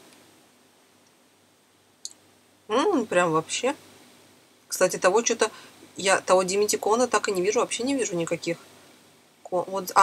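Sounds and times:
woman speaking: 2.7 - 3.8, 4.7 - 8.7, 9.4 - 10.0.

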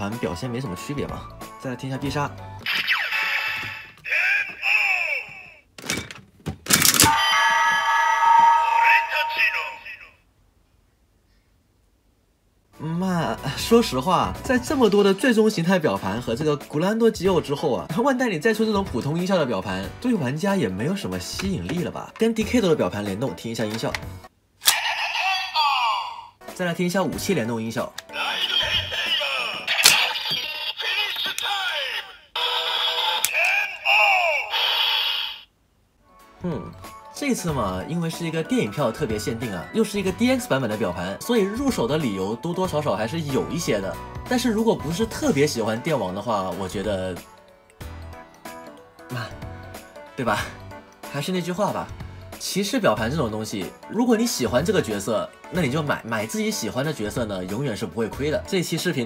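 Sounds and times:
electronic toy sound effects: 2.6 - 5.6, 24.6 - 26.2, 28.1 - 35.5
voice calls from toy speaker: 2.6 - 5.6, 6.9 - 10.2, 24.6 - 26.4, 28.1 - 35.5.

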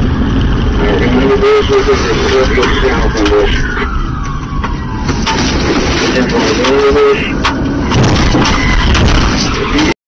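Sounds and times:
car engine and road rumble: 0.0 - 10.0
bumper scraping and knocking car: 4.2 - 9.9.

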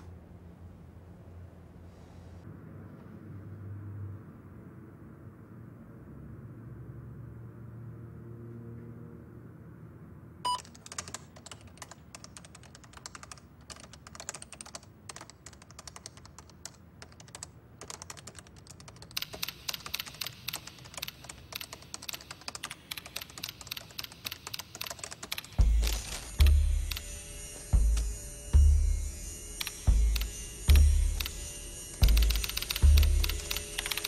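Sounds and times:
deep booming beats: 25.6 - 26.9, 27.8 - 29.2, 29.9 - 31.2.

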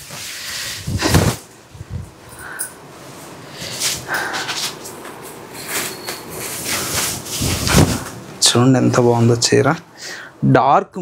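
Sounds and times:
silk fabric rustling: 5.6 - 8.2.

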